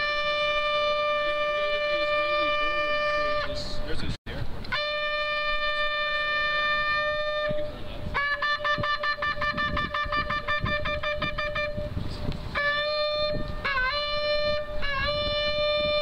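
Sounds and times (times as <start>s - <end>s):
ram's horn blasts: 0.0s - 4.1s, 4.7s - 16.0s.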